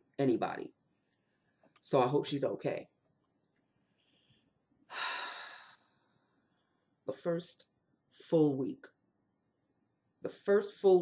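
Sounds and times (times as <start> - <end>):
woman breathing: 3.8 - 7.0.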